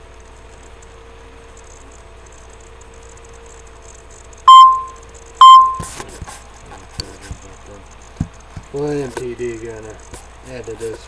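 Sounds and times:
faint electrical hum: 0.0s - 11.0s
electronic beeps: 4.5s - 5.9s.

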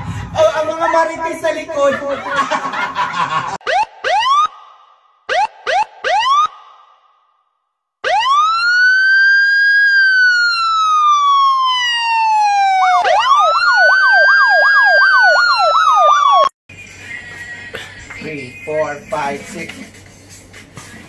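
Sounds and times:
siren wailing and yelping: 3.6s - 6.9s, 8.0s - 16.6s.

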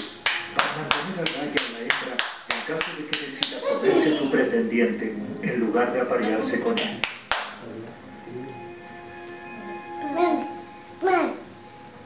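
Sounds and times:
hand claps: 0.0s - 3.6s, 6.7s - 7.6s
faint music with held notes: 0.0s - 12.0s.

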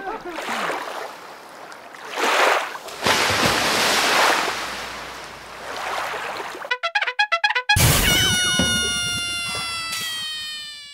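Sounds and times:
struck tone sinking in pitch: 6.8s - 10.9s.

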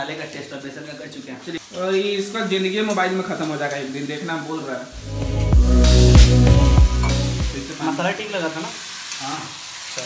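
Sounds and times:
loud sizzle in a pan: 1.2s - 10.0s
music with heavy bass: 5.0s - 7.7s.

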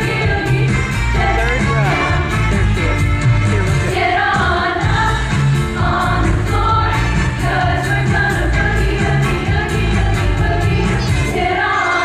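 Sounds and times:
girls' choir singing: 0.0s - 1.5s, 3.9s - 12.0s
instrumental accompaniment: 0.0s - 12.0s.

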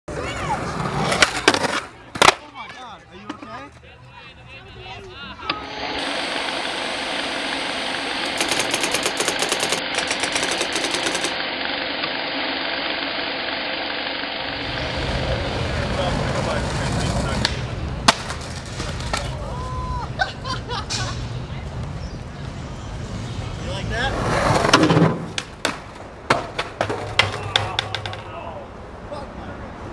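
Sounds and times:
skateboard crack: 0.5s - 2.5s, 14.4s - 19.5s, 24.1s - 28.4s
skateboard impacts: 0.6s - 3.5s, 17.4s - 19.4s, 24.1s - 28.5s
steady rolling noise: 4.8s - 20.2s, 21.3s - 29.9s.

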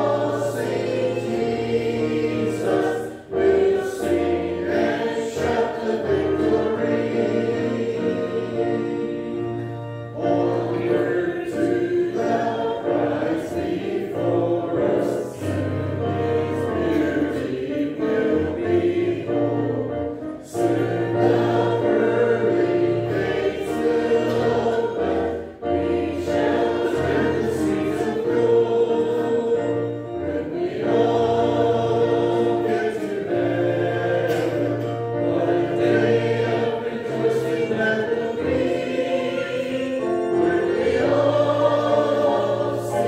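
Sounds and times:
choir singing a hymn: 0.0s - 43.0s
instrumental accompaniment: 0.0s - 43.0s.

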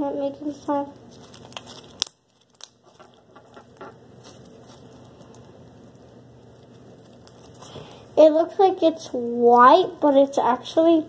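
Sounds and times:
slime with beads squeezed crackling: 0.6s - 8.0s.

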